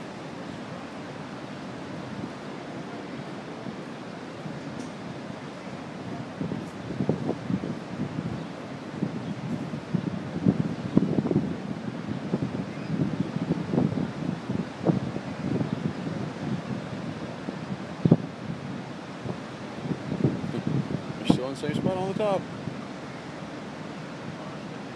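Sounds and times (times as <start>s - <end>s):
wind gusting on microphone: 0.0s - 24.9s.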